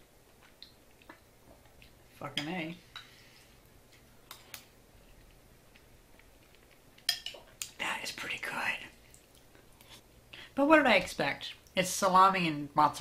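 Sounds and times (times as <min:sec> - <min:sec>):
chewing and wet mouth sounds: 0:00.2 - 0:02.1, 0:03.6 - 0:07.8, 0:08.9 - 0:10.1.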